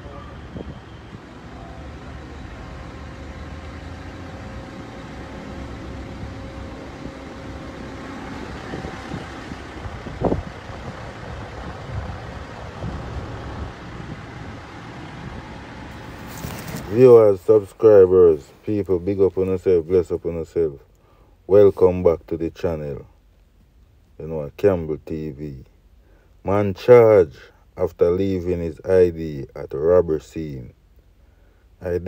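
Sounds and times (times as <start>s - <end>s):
vehicle engine running: 0.0s - 20.8s
low rumble of traffic: 0.0s - 32.0s.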